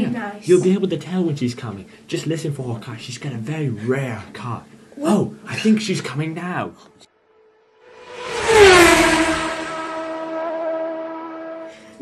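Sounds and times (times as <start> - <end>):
fast vehicle whooshing past: 7.5 - 11.7.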